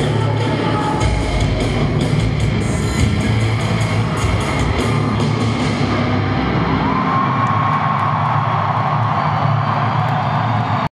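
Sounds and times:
drums and cymbals: 0.0s - 6.2s.

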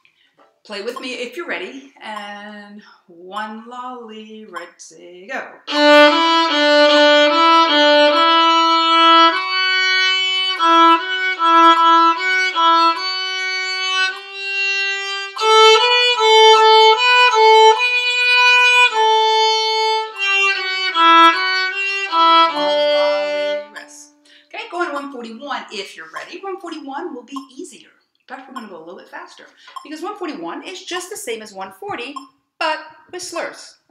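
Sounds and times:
solo violin melody: 5.7s - 24.2s.

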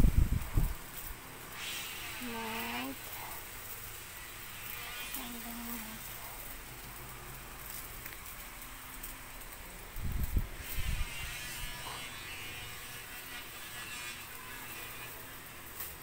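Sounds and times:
low electric hum: 0.0s - 16.0s.

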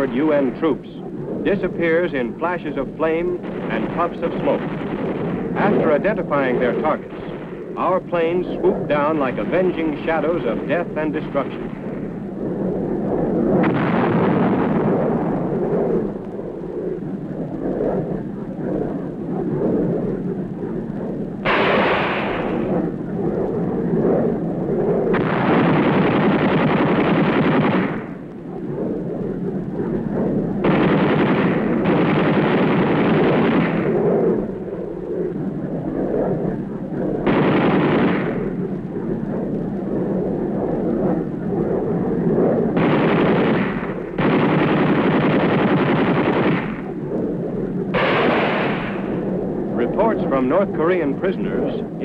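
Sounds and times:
low rumble: 0.0s - 52.0s
aircraft machine guns firing: 1.5s - 12.1s, 13.4s - 16.0s, 21.4s - 23.0s, 25.0s - 28.3s, 30.6s - 34.6s, 37.2s - 38.8s, 42.6s - 47.1s, 47.8s - 52.0s.

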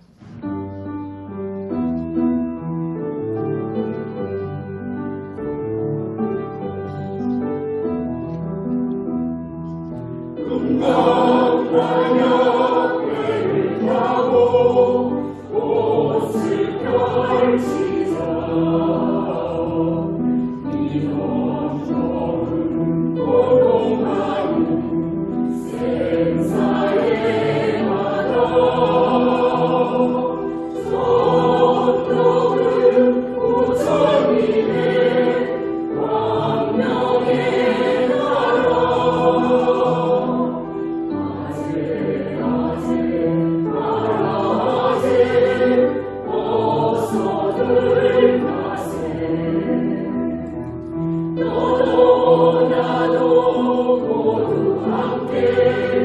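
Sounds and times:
mixed choir singing a hymn: 10.3s - 56.0s.

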